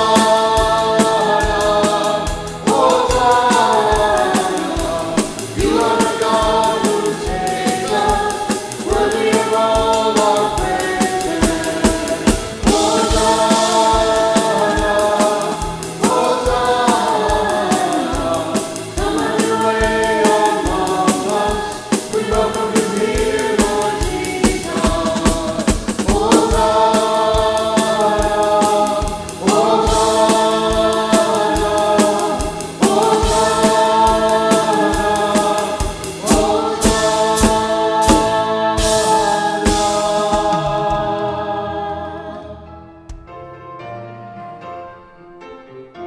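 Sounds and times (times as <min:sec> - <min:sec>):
drum kit beat: 0:00.0 - 0:41.5
group singing in harmony: 0:00.0 - 0:43.0
keyboard: 0:00.0 - 0:46.0.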